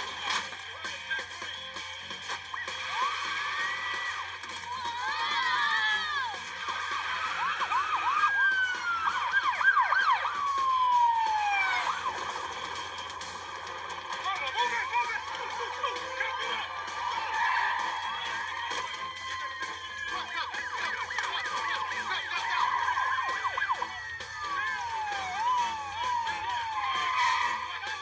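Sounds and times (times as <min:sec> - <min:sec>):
police sirens wailing: 0:00.0 - 0:28.0.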